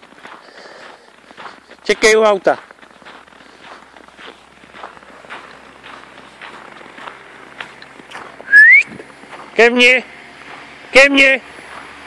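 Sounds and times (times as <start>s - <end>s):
footsteps crunching in snow: 0.0s - 12.0s
rising human whistle: 8.4s - 8.9s.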